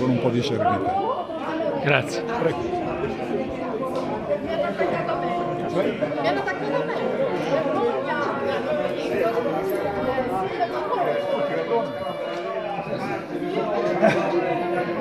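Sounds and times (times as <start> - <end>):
people chattering: 0.0 - 15.0.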